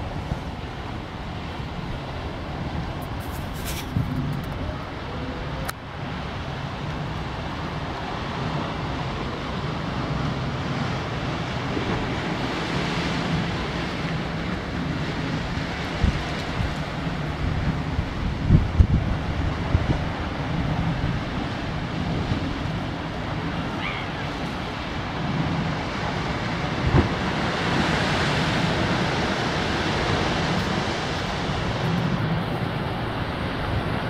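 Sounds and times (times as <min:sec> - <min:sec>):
surf washing over rocks: 0:00.0 - 0:34.0
wind buffeting microphone: 0:00.0 - 0:34.0.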